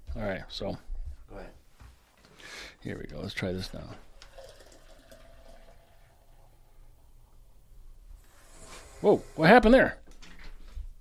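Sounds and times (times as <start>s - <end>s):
beer pouring from a tap: 3.6s - 7.4s.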